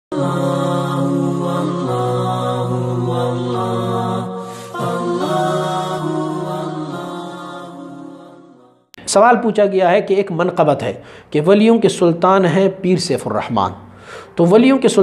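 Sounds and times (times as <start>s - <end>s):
chanted intro music: 0.1s - 8.9s.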